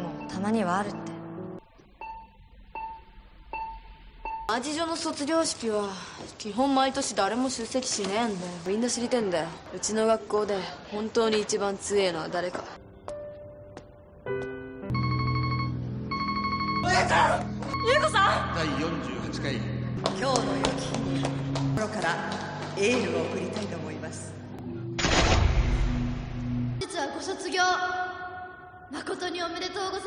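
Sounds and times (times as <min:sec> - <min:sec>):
heart monitor beeping: 0:02.0 - 0:04.5, 0:14.9 - 0:18.5
telephone ringing: 0:15.0 - 0:17.0.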